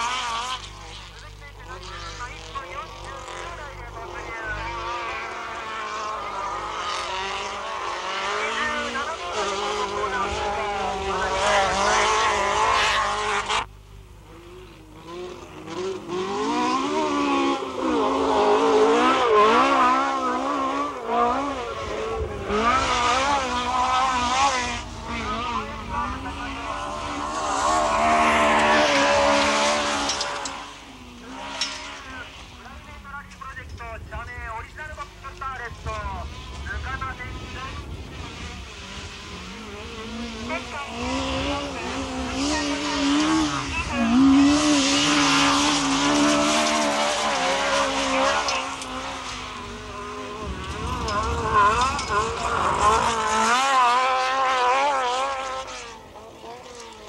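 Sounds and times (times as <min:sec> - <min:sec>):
car engine revving hard: 0:00.0 - 0:32.9, 0:35.4 - 0:57.0.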